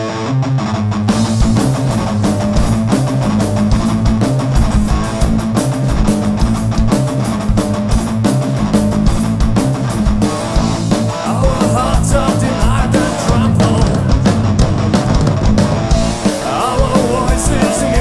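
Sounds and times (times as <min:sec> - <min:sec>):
live rock band playing: 0:00.0 - 0:18.0
drums driving beat: 0:00.9 - 0:18.0.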